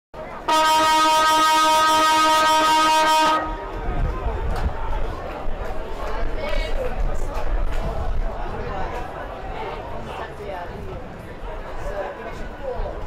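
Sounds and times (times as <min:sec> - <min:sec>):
siren steady note: 0:00.5 - 0:03.8.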